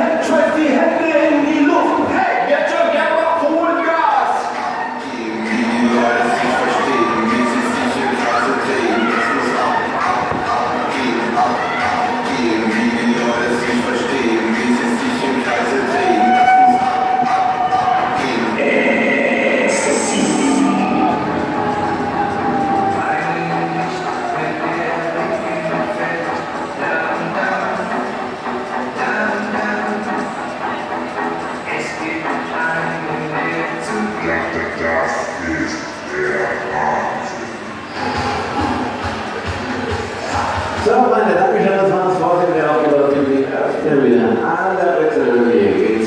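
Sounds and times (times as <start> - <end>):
funfair ride music: 0.0 - 46.0
voices: 0.0 - 46.0
voice over public-address system: 18.2 - 21.4.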